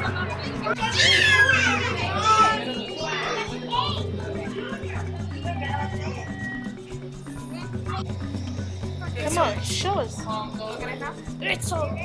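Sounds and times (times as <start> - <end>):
children squealing and shouting: 0.6 - 4.1
music with repeating bass line: 1.9 - 12.0.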